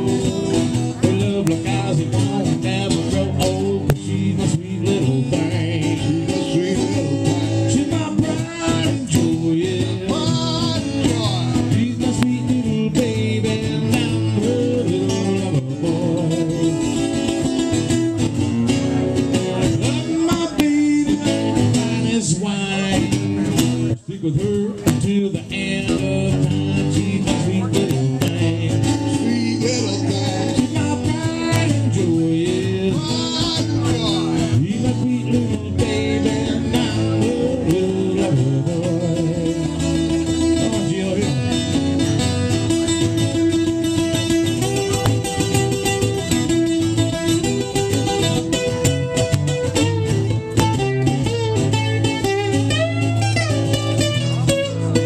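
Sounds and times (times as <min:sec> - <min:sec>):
acoustic guitars playing blues: 0:00.0 - 0:55.0.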